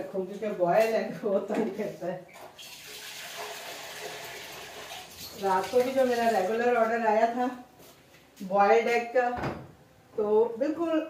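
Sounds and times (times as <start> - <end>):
water running from a tap: 2.6 - 6.5.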